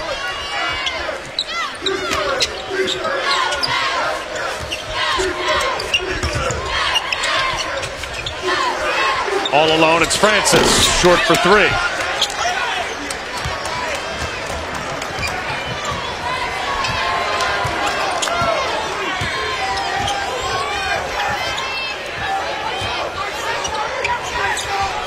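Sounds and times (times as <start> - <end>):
crowd murmur: 9.5 - 11.9.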